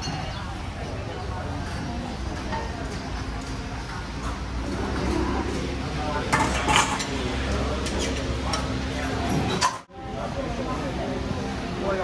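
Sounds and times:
utensils and crockery clattering: 0:01.6 - 0:09.9.

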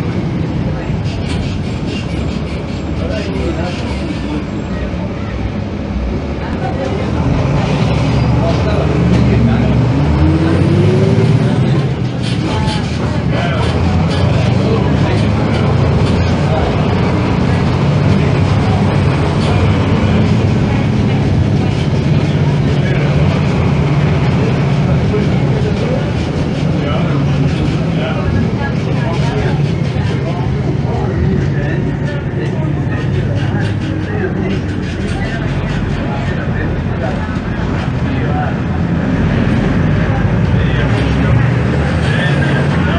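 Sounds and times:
bus diesel engine: 0:00.0 - 0:42.9.

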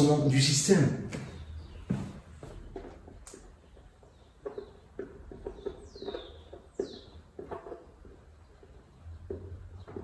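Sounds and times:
marker writing on whiteboard: 0:01.9 - 0:10.0.

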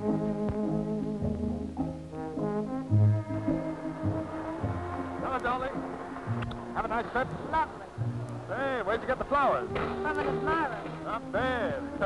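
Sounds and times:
brass band music: 0:02.1 - 0:12.0.

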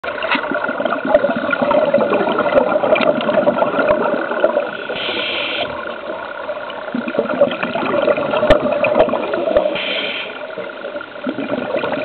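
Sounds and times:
muffled underwater rush: 0:00.0 - 0:12.0
regulator bubbles crackling: 0:00.0 - 0:12.0
short hiss: 0:04.9 - 0:05.7, 0:09.8 - 0:10.4.

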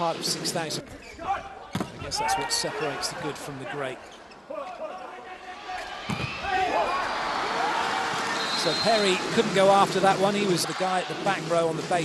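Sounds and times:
crowd cheering and shouting: 0:04.7 - 0:12.0.

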